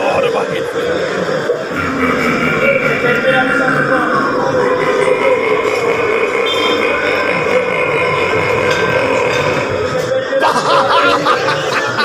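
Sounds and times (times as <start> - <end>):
long burp-like vocal sound: 1.7 - 10.1.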